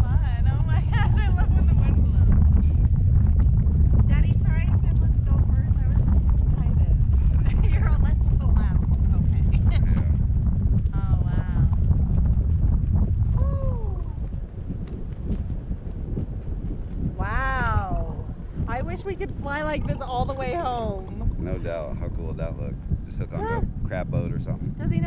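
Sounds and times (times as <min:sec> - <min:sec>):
voices: 0:00.0 - 0:02.4, 0:04.1 - 0:10.2, 0:11.0 - 0:11.8, 0:13.4 - 0:14.3, 0:17.2 - 0:25.0
wind buffeting microphone: 0:00.0 - 0:25.0.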